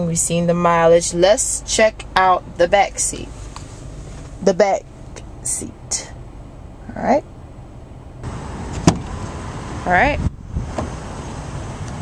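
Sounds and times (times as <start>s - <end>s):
low outdoor rumble: 0.0s - 12.0s
car door latch click: 8.7s - 9.2s.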